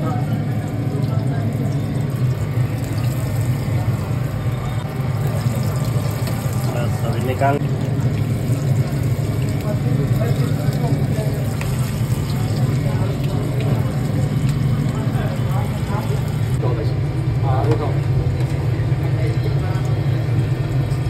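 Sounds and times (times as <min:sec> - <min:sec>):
hot oil sizzling and bubbling: 0:00.0 - 0:21.0.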